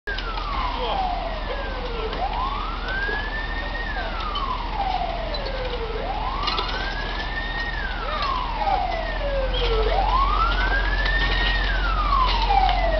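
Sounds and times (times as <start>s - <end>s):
fire engine siren wailing: 0.1s - 12.9s
low engine rumble: 0.1s - 12.9s.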